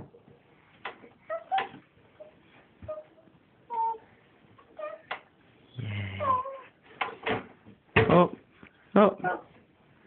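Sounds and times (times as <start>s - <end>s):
adult saying a word: 5.8s - 6.4s.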